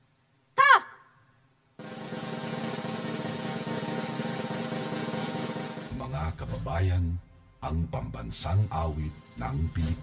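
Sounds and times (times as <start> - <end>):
snare drum roll: 1.8 - 6.4.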